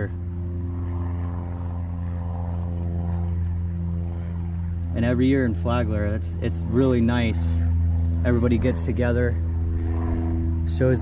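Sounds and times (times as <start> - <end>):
sustained ambient music tones: 0.0 - 11.0.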